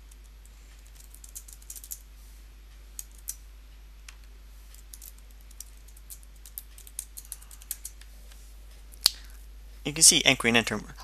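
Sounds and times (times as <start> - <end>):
computer keyboard typing: 0.1 - 2.0, 4.8 - 8.1.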